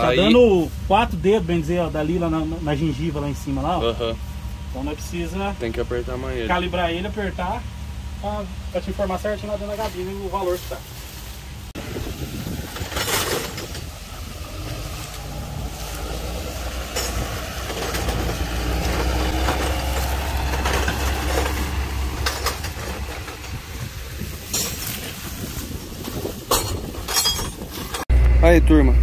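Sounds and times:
tractor engine running: 0.0s - 29.0s
clinks and knocks: 16.7s - 23.6s, 26.5s - 28.0s.

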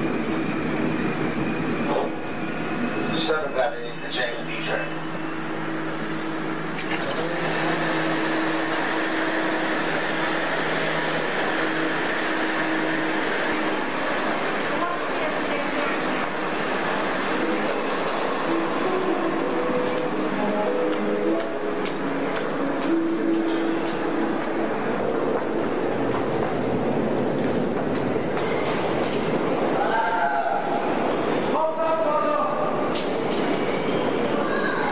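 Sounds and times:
subway train humming: 0.0s - 34.9s.

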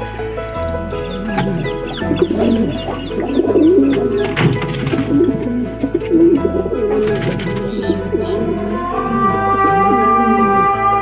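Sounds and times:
wavering melody over drone: 0.0s - 11.0s
pigeons cooing: 1.0s - 11.0s.

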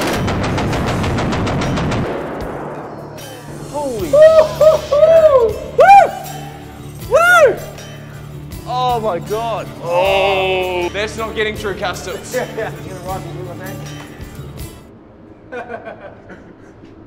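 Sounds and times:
machine gun burst: 0.0s - 2.8s
music: 0.0s - 17.0s
swooping rising and falling tones: 2.6s - 7.6s.

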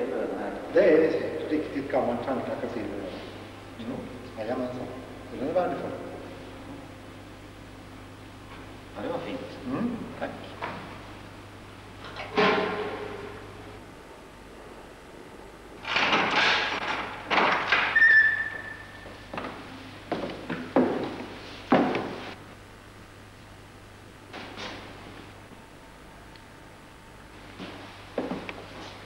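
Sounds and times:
tape hiss: 16.8s - 29.0s
door squeaking: 17.6s - 19.1s.

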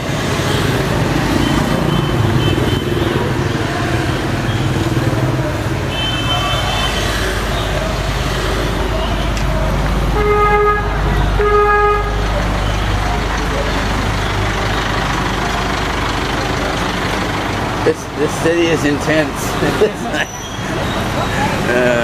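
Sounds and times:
street traffic engines: 0.0s - 22.0s
vehicle horn toots: 1.4s - 3.1s, 5.9s - 7.7s, 10.1s - 12.3s.

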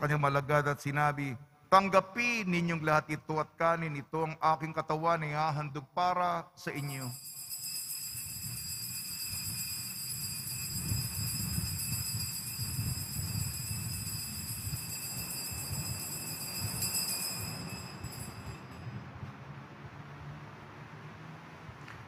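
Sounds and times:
altar bells ringing: 6.8s - 19.0s.

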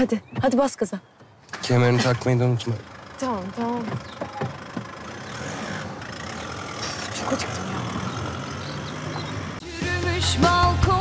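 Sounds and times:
pickup truck engine running: 1.8s - 9.6s.

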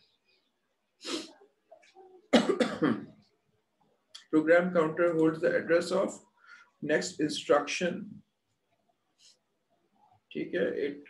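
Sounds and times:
man coughing: 2.4s - 3.1s.

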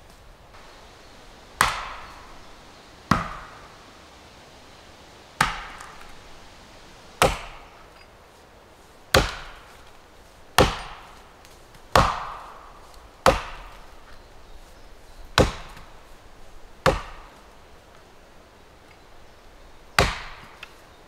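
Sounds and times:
axe chopping wood: 1.6s - 2.5s, 3.1s - 3.6s, 5.4s - 6.2s, 7.2s - 7.7s, 9.1s - 9.9s, 10.6s - 13.8s, 15.4s - 15.9s, 16.8s - 17.3s, 20.0s - 20.6s.

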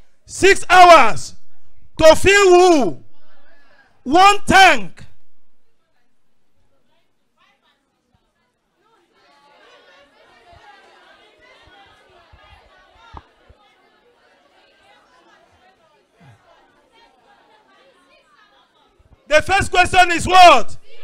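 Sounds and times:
class chattering: 7.5s - 19.3s.

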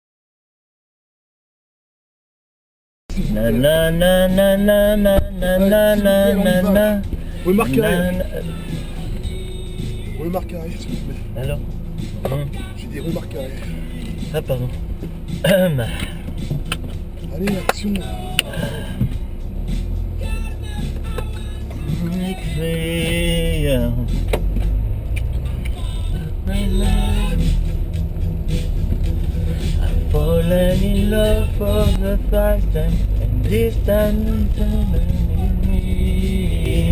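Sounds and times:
car engine and road rumble: 3.1s - 36.9s
music: 3.1s - 36.9s
voice: 3.2s - 8.9s, 10.1s - 14.8s, 15.4s - 16.2s, 17.3s - 19.2s, 21.1s - 24.2s.

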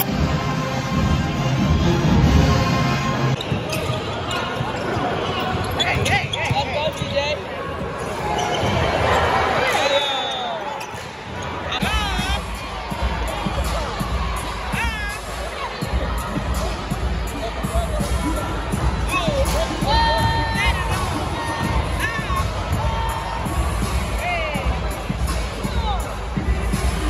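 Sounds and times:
music in the hall: 0.0s - 3.8s, 11.7s - 27.0s
crowd chatter: 0.0s - 27.0s
sneakers squeaking on floor: 3.3s - 12.4s
basketball bouncing on court: 3.4s - 7.5s.

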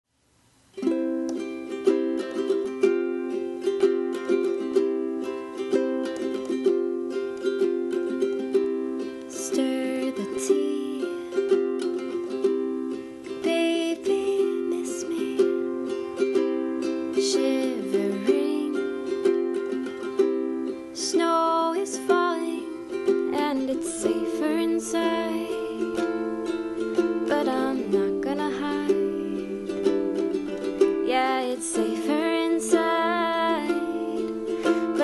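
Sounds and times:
ukulele playing chords: 0.7s - 35.0s.

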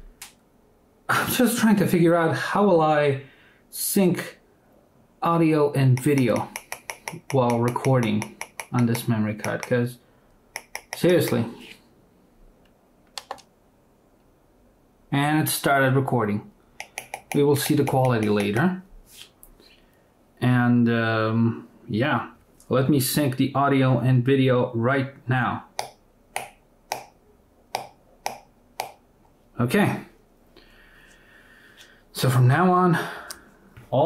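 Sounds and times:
sharp clicks: 5.9s - 9.8s, 10.6s - 11.4s, 13.1s - 13.5s, 16.8s - 18.7s.

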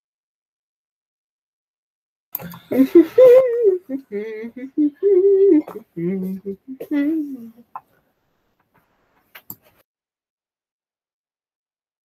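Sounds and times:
person singing: 2.4s - 7.6s.

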